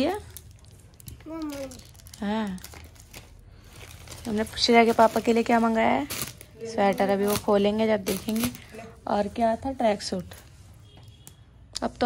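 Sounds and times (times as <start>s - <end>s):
plastic snack packet crinkling: 0.0s - 8.9s
person making short voiced sounds: 1.2s - 1.8s.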